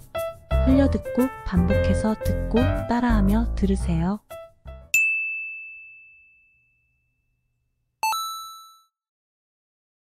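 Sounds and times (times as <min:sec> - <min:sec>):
bright chime ding: 0:05.0 - 0:06.9, 0:08.0 - 0:08.9
fuller multi-tone chime ding: 0:05.0 - 0:07.1, 0:08.0 - 0:08.9.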